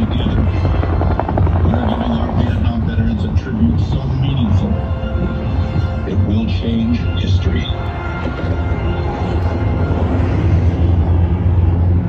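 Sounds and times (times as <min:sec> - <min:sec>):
voice: 0:00.0 - 0:00.5, 0:01.6 - 0:04.8, 0:06.1 - 0:07.8
helicopter rotor beating: 0:00.0 - 0:12.0
music: 0:00.0 - 0:12.0.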